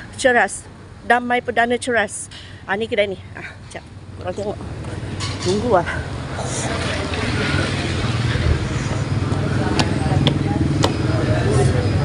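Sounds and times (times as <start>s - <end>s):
faint voices: 0.0s - 12.0s
vehicle engine drone: 3.2s - 12.0s.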